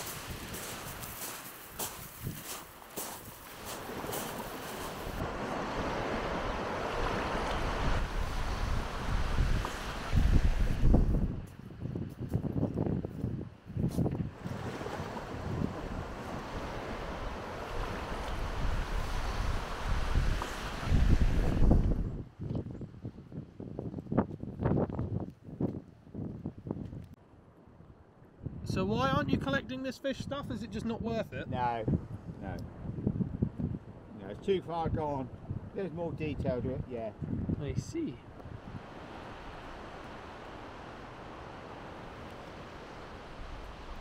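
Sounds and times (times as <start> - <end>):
footsteps crunching on shingle: 0.0 - 5.2
surf washing on beach: 0.0 - 11.5, 14.2 - 22.1, 38.0 - 44.0
wind buffeting microphone: 0.0 - 27.2, 30.9 - 44.0.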